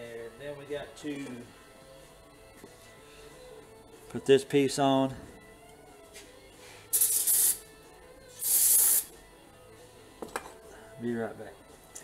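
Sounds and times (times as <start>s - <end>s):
pressurised spray hissing: 6.9s - 7.6s, 8.4s - 9.1s.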